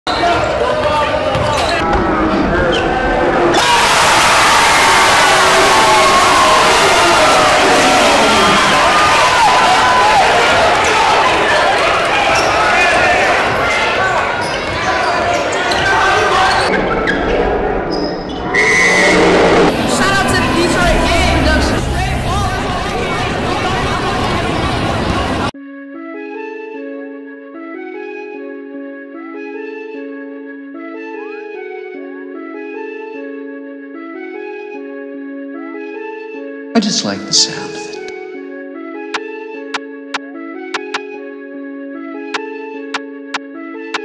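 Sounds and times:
crowd shouting and cheering: 0.1s - 25.6s.

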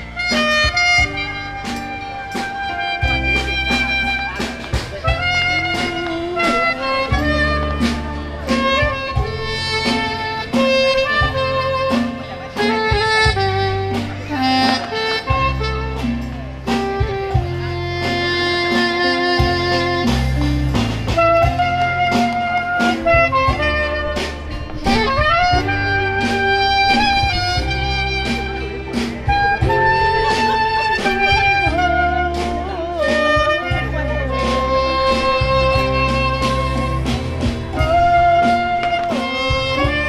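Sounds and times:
bass: 0.0s - 40.0s
drums keeping a beat: 0.0s - 40.0s
soprano saxophone melody: 0.0s - 40.0s.

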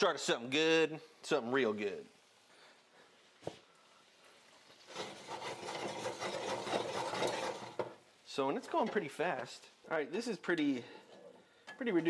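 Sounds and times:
pan scraping on hob: 4.8s - 8.0s.

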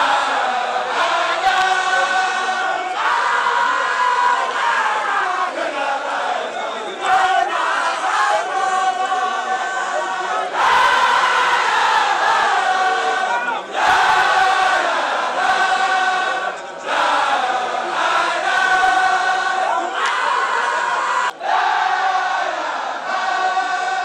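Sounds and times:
crowd of men chanting: 0.0s - 24.0s.

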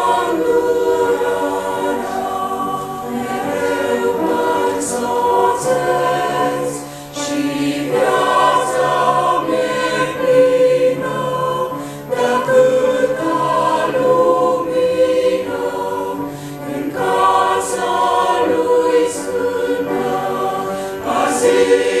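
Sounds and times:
choir singing religious song: 0.0s - 22.0s.

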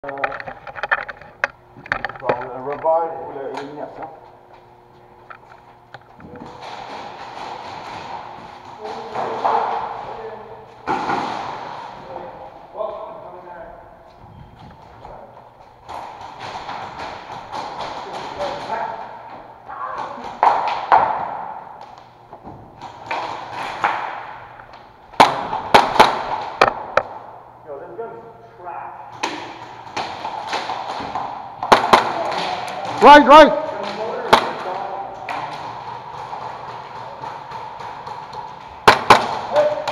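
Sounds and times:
airsoft guns firing: 10.8s - 12.2s, 25.2s - 27.2s, 29.2s - 39.9s.

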